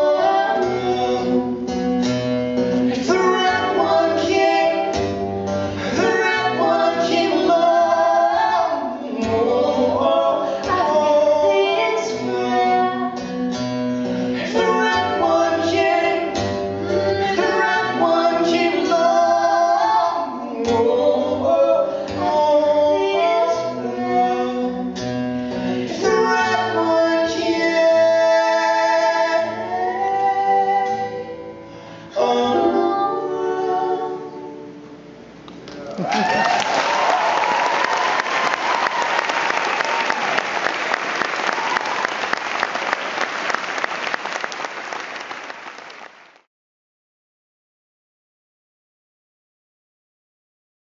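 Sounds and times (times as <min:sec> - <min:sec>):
woman and man singing: 0:00.0 - 0:01.9, 0:02.7 - 0:13.3, 0:14.3 - 0:25.1, 0:25.7 - 0:34.8
strummed acoustic guitar: 0:00.0 - 0:19.2, 0:20.6 - 0:32.1.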